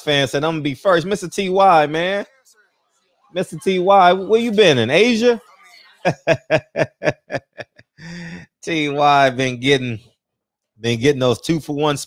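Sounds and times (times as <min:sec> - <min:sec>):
man laughing: 0:06.0 - 0:08.6.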